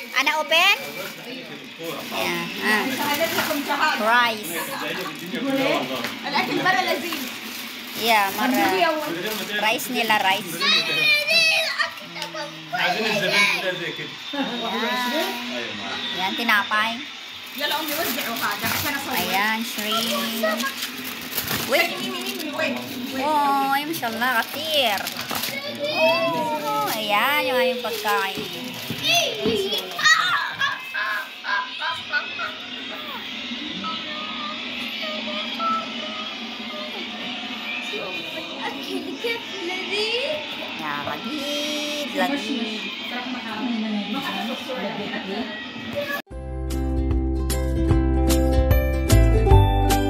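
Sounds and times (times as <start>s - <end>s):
children chattering and calling out: 0.0s - 46.3s.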